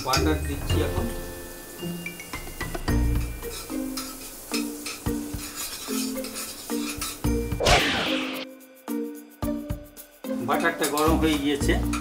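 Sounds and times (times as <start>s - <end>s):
light sizzle of frying: 0.0s - 12.0s
soft background music: 0.0s - 12.0s
metal spoon scraping a wok: 3.3s - 7.6s
loud whoosh: 7.6s - 8.5s.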